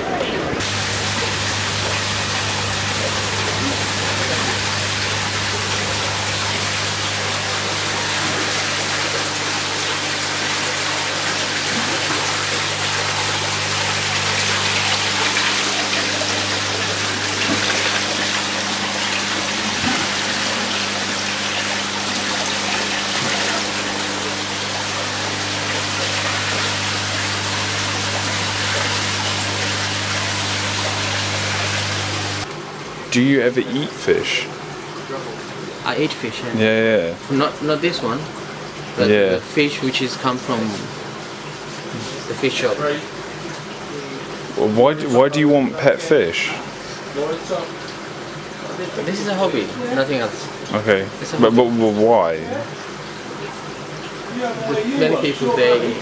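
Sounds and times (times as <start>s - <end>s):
aquarium water bubbling: 0.0s - 56.0s
air pumps humming: 0.6s - 32.8s.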